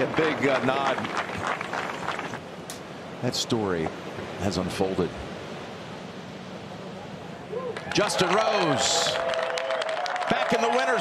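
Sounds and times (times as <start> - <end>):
wind: 0.0 - 11.0.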